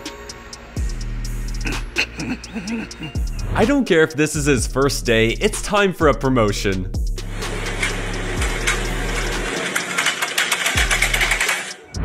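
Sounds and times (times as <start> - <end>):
ceramic plates rattling: 8.4 - 11.9.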